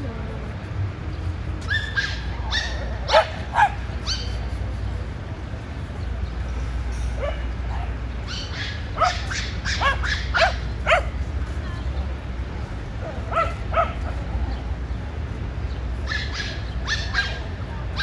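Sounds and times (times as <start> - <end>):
small dogs yapping: 1.6 - 4.4, 7.2 - 11.2, 16.0 - 18.0.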